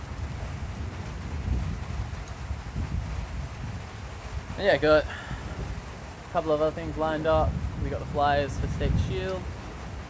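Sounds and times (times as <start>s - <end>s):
low rumbling gusts: 0.0s - 10.0s
rain hiss: 0.0s - 10.0s
wind buffeting microphone: 0.0s - 10.0s.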